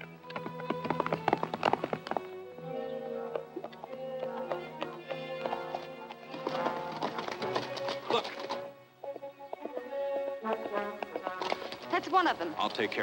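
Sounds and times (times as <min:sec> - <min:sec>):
horse hoofbeats: 0:00.0 - 0:13.0
orchestral film music: 0:00.0 - 0:13.0.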